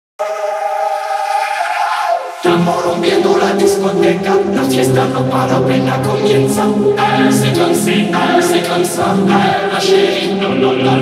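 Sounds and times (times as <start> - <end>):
vocoder synth chord: 2.4 - 11.0.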